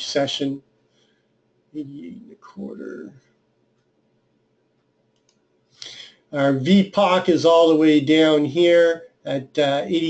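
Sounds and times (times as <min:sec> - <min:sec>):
computer mouse clicks: 0:04.8 - 0:06.0
breathy intake: 0:05.8 - 0:06.2.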